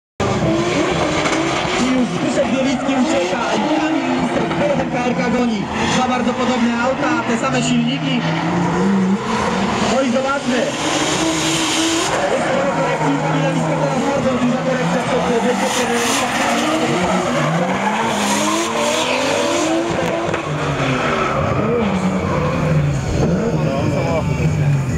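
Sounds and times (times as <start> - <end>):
car engines at high revs: 0.2 - 24.9
tyres skidding and squealing: 0.2 - 24.9.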